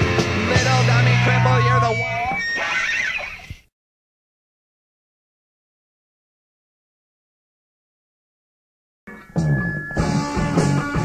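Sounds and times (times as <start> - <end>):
punk band playing: 0.0 - 2.3, 9.1 - 11.0
squealing high-pitched sounds: 1.0 - 3.6.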